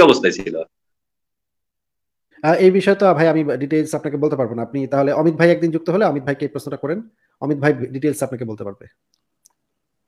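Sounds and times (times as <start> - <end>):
man speaking: 0.0 - 0.7, 2.3 - 9.0.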